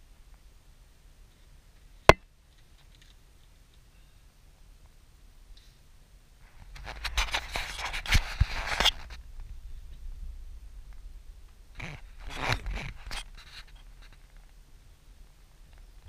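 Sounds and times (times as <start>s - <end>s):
scratchy scraping and rustling: 6.4s - 10.3s, 10.9s - 14.6s
low steady car rumble: 9.0s - 16.0s.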